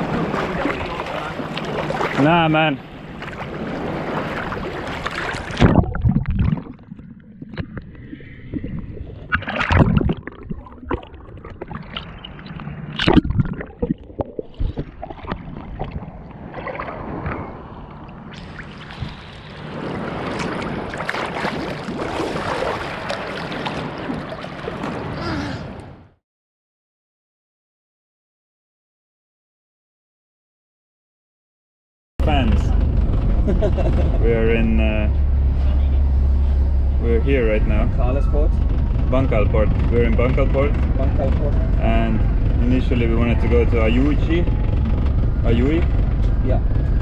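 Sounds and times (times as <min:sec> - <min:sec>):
seawater sloshing and splashing: 0:00.0 - 0:25.8
muffled underwater gurgling: 0:05.3 - 0:19.6.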